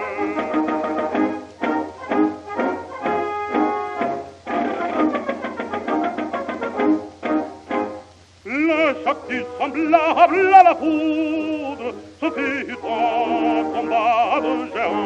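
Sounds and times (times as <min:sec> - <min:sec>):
orchestra playing march: 0:00.0 - 0:08.1
faint surface hiss: 0:00.0 - 0:15.0.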